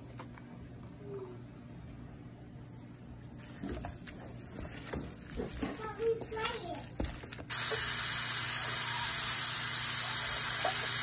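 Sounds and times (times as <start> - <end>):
sausage patties sizzling in skillet: 7.5 - 11.0.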